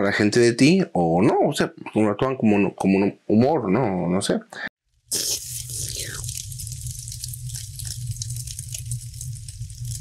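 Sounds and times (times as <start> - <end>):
crackling and popping: 4.9 - 10.0.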